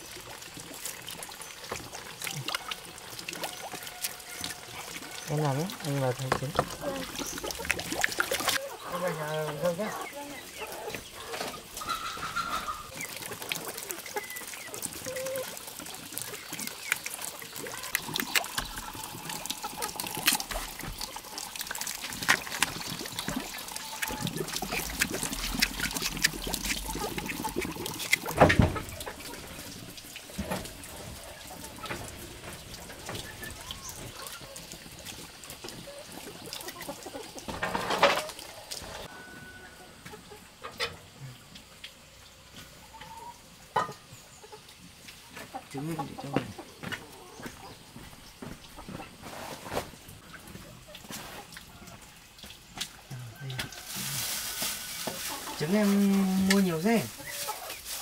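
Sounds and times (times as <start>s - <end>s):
water splashing and trickling: 0.0s - 58.0s.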